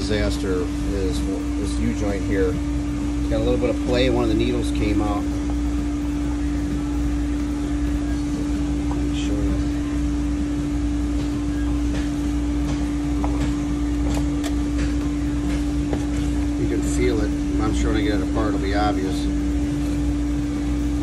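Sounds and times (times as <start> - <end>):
steady machine hum: 0.0 - 21.0.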